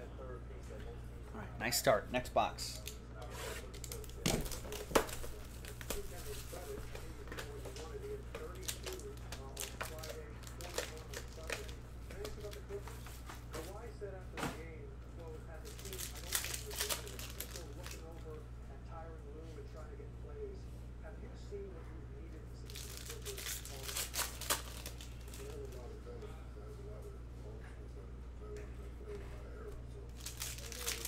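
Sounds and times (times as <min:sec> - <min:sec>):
foil packs crinkling and crackling: 0:03.6 - 0:12.8, 0:15.6 - 0:18.1, 0:22.7 - 0:25.8, 0:30.1 - 0:31.0.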